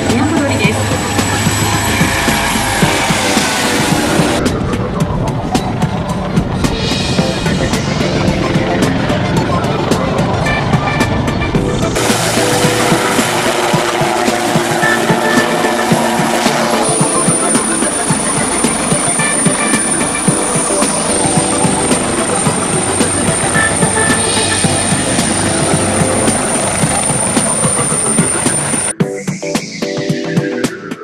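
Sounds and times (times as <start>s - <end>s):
helicopter rotor chopping: 0.0s - 28.9s
high steady whine: 0.0s - 31.0s.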